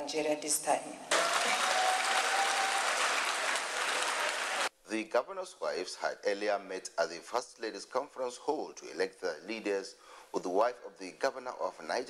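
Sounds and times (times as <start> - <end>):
audience applauding: 1.1 - 4.7.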